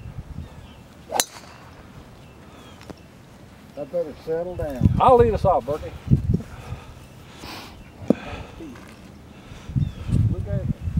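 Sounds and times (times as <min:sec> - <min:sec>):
golf club striking ball: 0:01.1 - 0:01.8.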